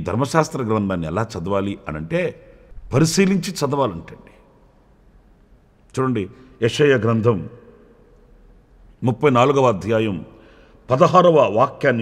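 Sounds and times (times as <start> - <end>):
man speaking: 0.0 - 4.4, 5.9 - 7.8, 9.0 - 10.3, 10.9 - 12.0
faint breath: 10.4 - 10.9.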